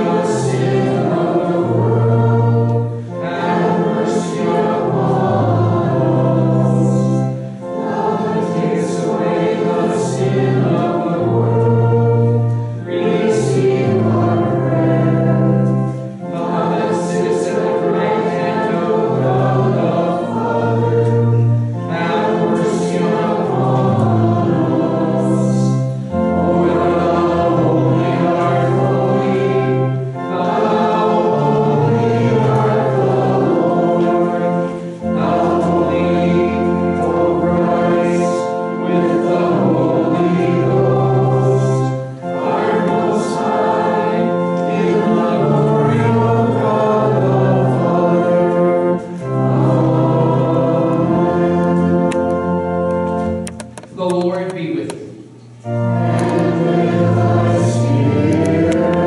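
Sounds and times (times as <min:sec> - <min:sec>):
congregation singing a hymn: 0:00.0 - 0:59.0
sustained low accompaniment: 0:00.0 - 0:59.0.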